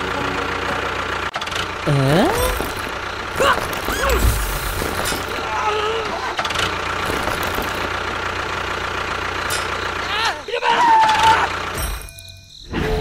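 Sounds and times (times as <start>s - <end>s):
engine running steadily: 0.0s - 12.2s
voice-like cries: 5.4s - 6.4s, 10.1s - 11.7s.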